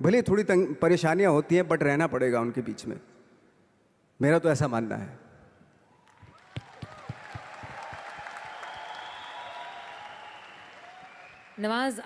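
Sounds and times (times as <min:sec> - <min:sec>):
audience applause: 0:06.0 - 0:11.8.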